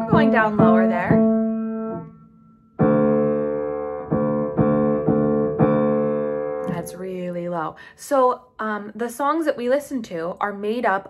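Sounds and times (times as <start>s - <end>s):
piano notes: 0.0s - 7.3s.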